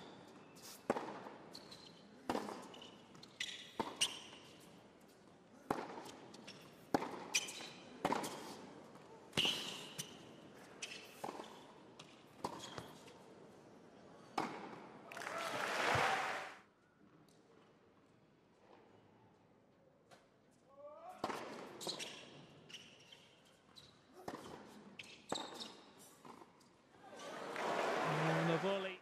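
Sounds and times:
tennis ball struck by rackets: 6.9 - 7.3
crowd applause: 15.1 - 16.6, 27.2 - 29.0.

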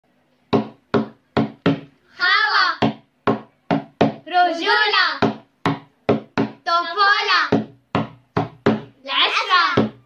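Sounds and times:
hand slapping tabletop: 0.5 - 2.0, 2.8 - 4.2, 5.2 - 6.6, 7.4 - 9.0, 9.6 - 10.0.

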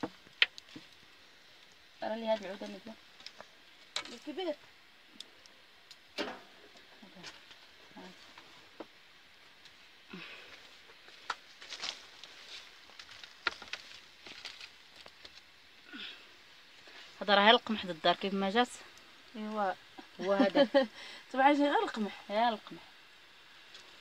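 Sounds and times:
wood fire crackling: 0.0 - 24.0.

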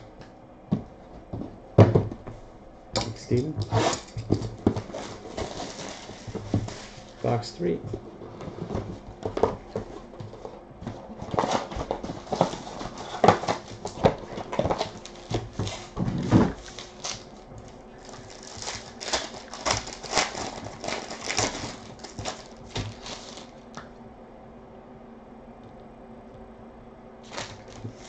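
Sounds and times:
foil packs rustling: 3.2 - 23.7, 27.2 - 28.0.

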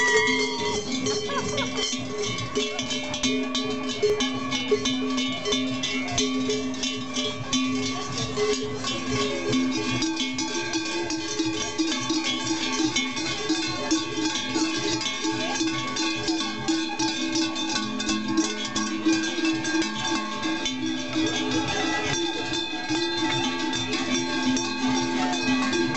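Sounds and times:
large cowbells clanging: 0.0 - 25.9.

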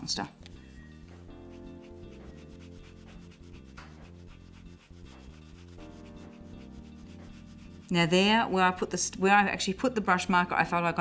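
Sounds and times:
soft background music: 0.0 - 11.0
brush bristles rubbing on card: 0.4 - 8.4.

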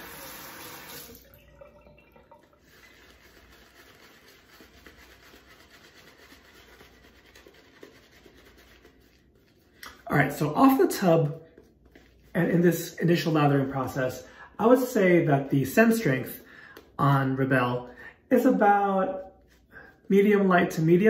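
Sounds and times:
tap water running: 0.0 - 5.9
shaving brush rubbing on face: 2.6 - 13.9, 18.4 - 21.0.

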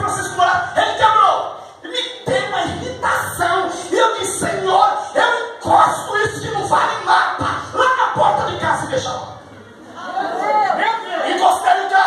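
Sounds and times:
amplified voice in a large hall: 0.0 - 12.0.

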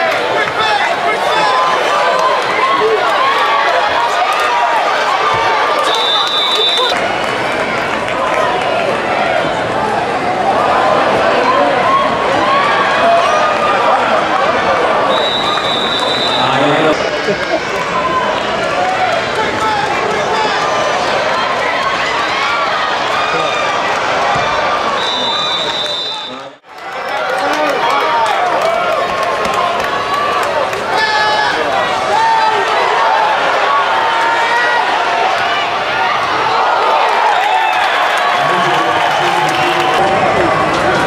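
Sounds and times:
crowd voices talking and calling: 0.0 - 41.0
short high whistle: 15.1 - 16.5, 25.0 - 26.5.

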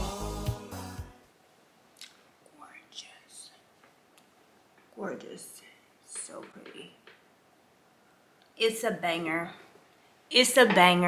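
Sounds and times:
woman whispering faintly: 2.5 - 3.7.

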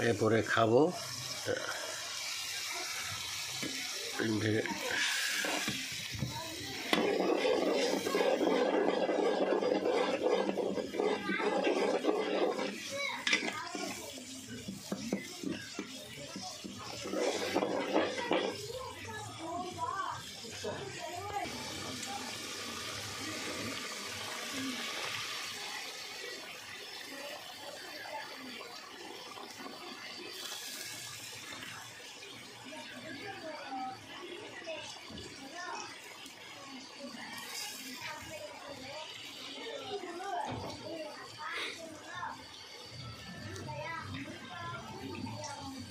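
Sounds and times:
curry bubbling in a pot: 0.0 - 45.9
metal spoon scraping a pot: 4.8 - 18.7.

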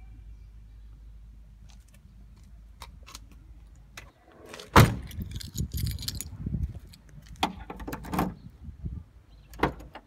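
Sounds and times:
light clatter and handling noise: 1.6 - 8.3
car door slamming: 4.7 - 5.1.

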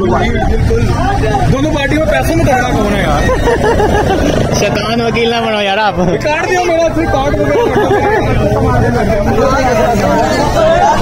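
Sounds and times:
men talking loudly: 0.0 - 11.0.

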